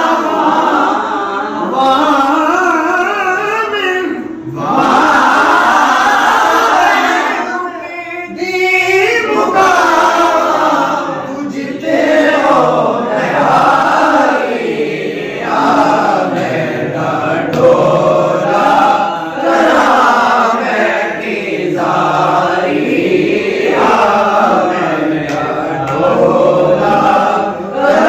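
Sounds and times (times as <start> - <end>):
men singing together unaccompanied: 0.0 - 28.0.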